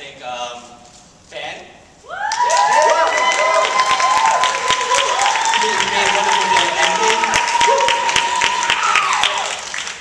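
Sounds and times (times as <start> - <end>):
long held cheer: 2.1 - 9.9
audience applauding: 2.2 - 10.0.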